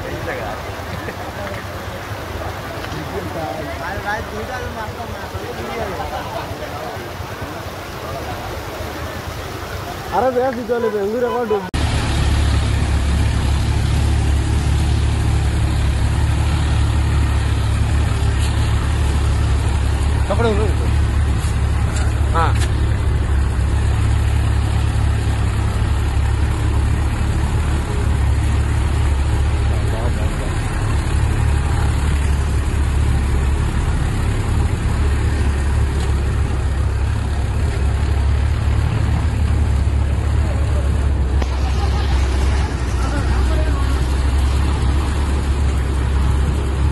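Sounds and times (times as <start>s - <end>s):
tractor diesel engine running: 11.8s - 46.9s.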